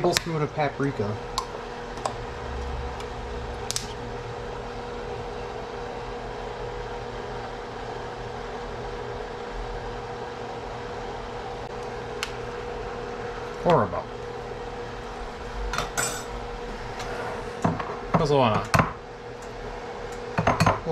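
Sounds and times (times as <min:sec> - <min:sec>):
faint steady whine: 0:00.0 - 0:07.7, 0:11.0 - 0:20.2
fan-like hum: 0:00.0 - 0:20.9.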